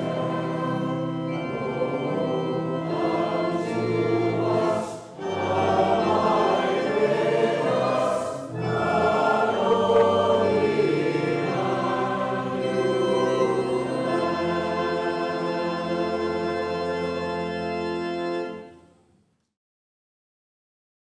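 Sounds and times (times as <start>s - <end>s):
choir singing sustained chords: 0.0s - 18.9s.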